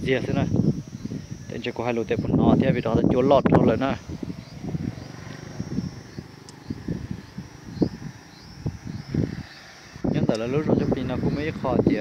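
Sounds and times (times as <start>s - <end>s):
wind buffeting microphone: 0.0s - 12.0s
faint high chirps: 3.9s - 10.0s.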